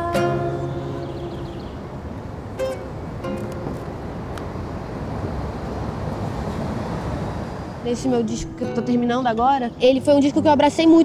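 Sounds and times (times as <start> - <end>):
low rumbling street noise: 0.0 - 11.0.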